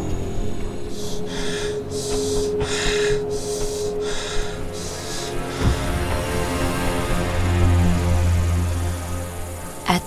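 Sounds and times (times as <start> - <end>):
low background music note: 0.0 - 10.0
man breathing heavily: 0.8 - 6.9.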